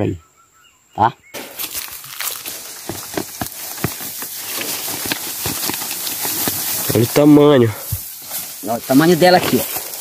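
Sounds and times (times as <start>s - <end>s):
leaves rustling: 1.4s - 10.0s
plant being pulled from soil: 1.6s - 7.2s.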